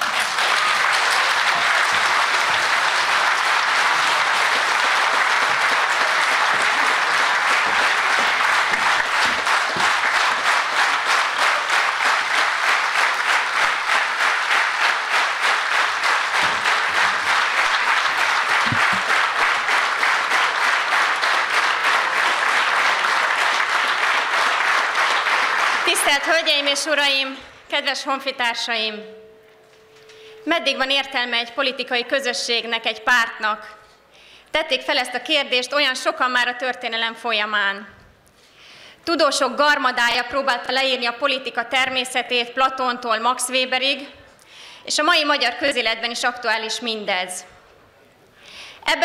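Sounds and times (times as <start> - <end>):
audience applauding: 0.0 - 26.5.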